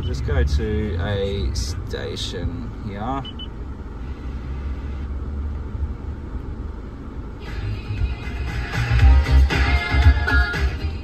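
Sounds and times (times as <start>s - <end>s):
radio music through car speakers: 0.0s - 5.1s
engine idling: 0.0s - 11.0s.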